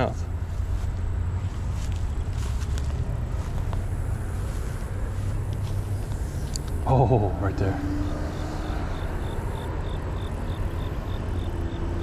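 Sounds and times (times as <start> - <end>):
low drone of motor traffic: 0.0 - 12.0.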